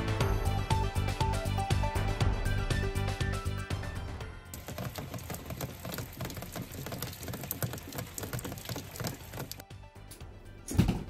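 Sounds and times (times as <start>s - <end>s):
rain pattering and dripping: 4.5s - 9.6s.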